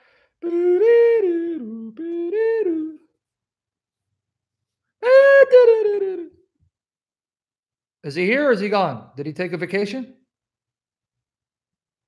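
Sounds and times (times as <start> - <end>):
man humming a tune: 0.4 - 3.1, 5.0 - 6.4.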